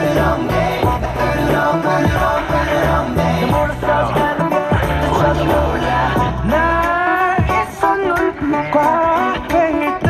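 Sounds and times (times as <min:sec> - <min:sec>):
backing track: 0:00.0 - 0:10.0
person singing: 0:00.0 - 0:10.0.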